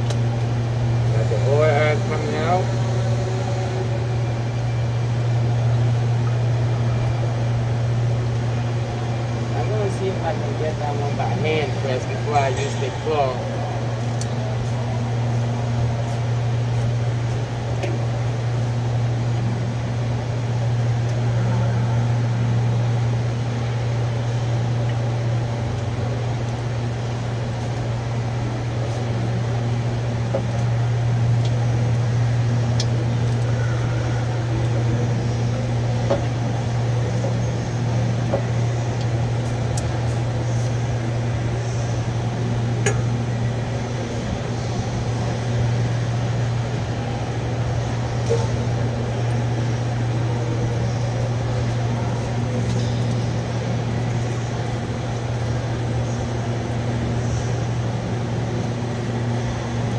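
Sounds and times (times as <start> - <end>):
loud steady low hum: 0.0 - 59.9.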